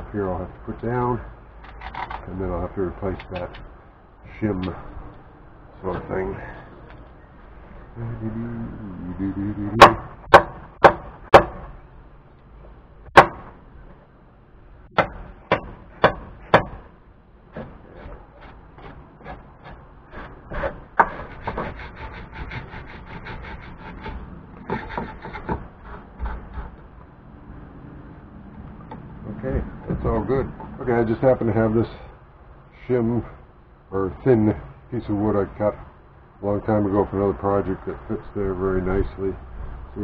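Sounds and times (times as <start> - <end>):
hammer striking nails into wood: 9.8 - 11.7, 13.1 - 13.5, 15.0 - 16.8.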